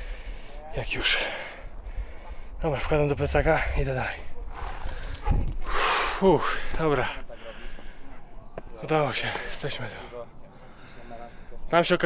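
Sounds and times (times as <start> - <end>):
heavy breath: 0.0 - 2.6, 4.5 - 8.4, 9.3 - 11.7.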